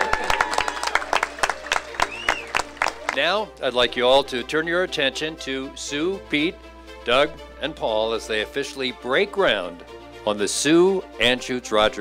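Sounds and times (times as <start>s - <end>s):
sharp hand claps: 0.0s - 3.2s
crowd applauding: 0.0s - 3.3s.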